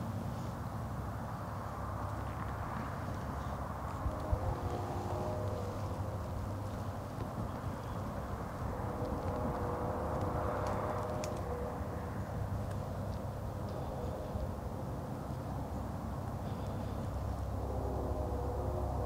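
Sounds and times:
distant road traffic rumble: 0.0s - 19.0s
vehicle passing: 0.0s - 19.0s
faint clicks: 6.6s - 11.7s.

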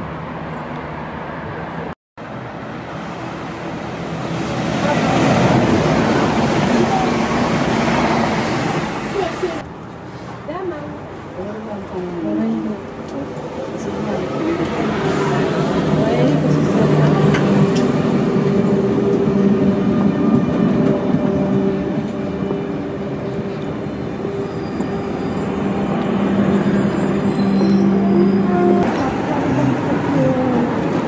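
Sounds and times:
train motors humming: 2.4s - 9.6s, 11.5s - 31.0s
train wheels rumbling: 11.7s - 31.0s
high squeals of train: 13.4s - 30.9s.

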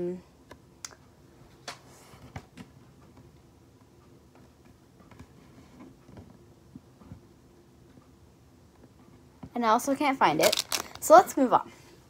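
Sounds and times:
small objects clicking and knocking: 10.4s - 11.1s.

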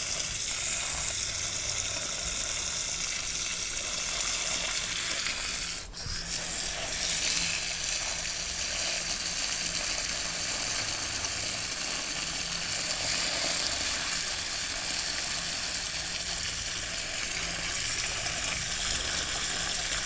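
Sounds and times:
hose water spraying into soil: 0.0s - 20.0s.

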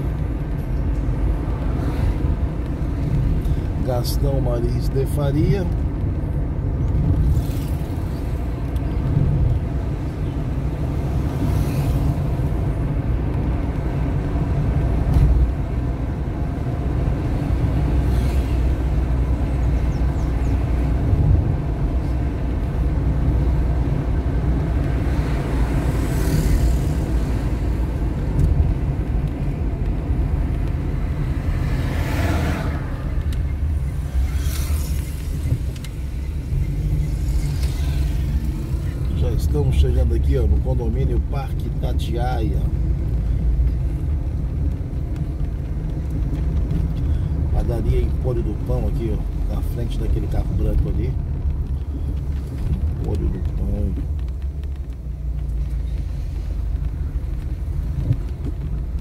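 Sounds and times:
car engine and road noise: 0.0s - 59.0s
passing traffic: 0.0s - 59.0s.

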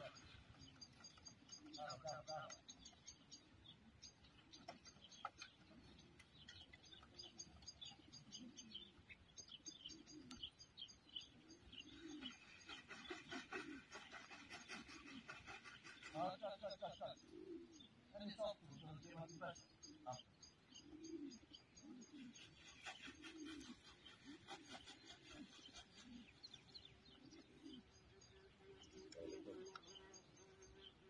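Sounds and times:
pigeons cooing: 0.0s - 31.0s.

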